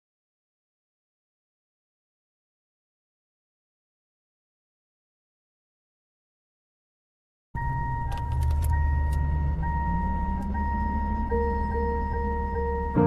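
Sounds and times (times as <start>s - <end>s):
car engine idling: 7.6s - 13.0s
car warning chime: 7.6s - 13.0s
soft sustained keyboard note: 7.6s - 13.0s
keys jangling and clicking: 8.1s - 8.8s.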